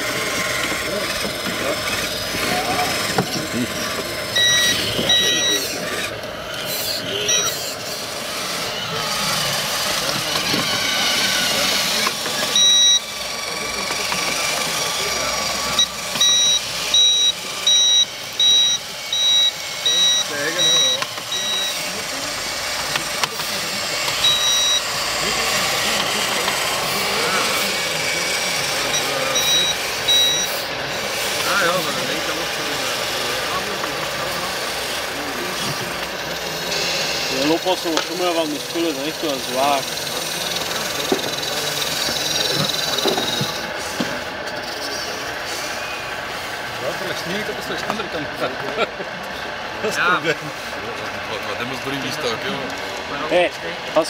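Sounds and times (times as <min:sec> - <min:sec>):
electronic reversing beeper: 0:00.0 - 0:34.5, 0:36.6 - 0:44.0.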